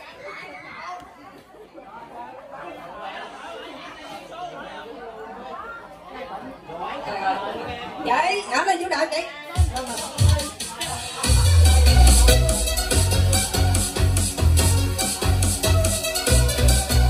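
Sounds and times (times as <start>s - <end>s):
chatter of many people: 0.0s - 17.0s.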